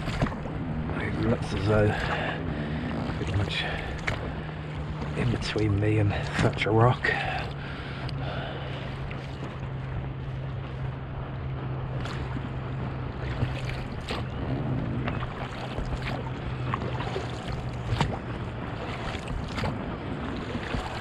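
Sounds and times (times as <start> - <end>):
boat motor humming: 0.0 - 21.0
water splashing against hull: 0.0 - 21.0.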